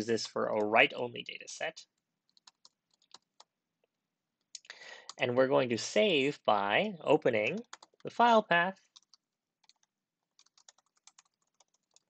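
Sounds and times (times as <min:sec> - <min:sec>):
faint keyboard typing: 0:00.2 - 0:03.6, 0:07.4 - 0:08.1, 0:08.8 - 0:12.0.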